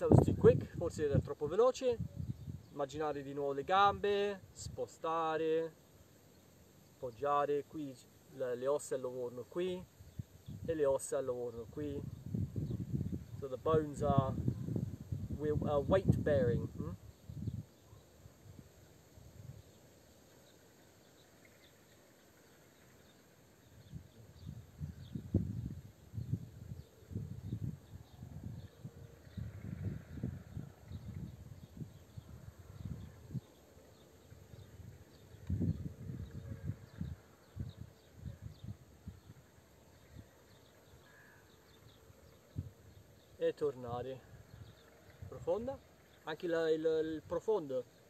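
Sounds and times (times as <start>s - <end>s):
wind rumble on microphone: 0.0s - 2.7s, 9.9s - 10.7s, 11.6s - 19.7s, 23.7s - 41.2s, 41.8s - 43.2s
insect chirps: 17.0s - 27.8s.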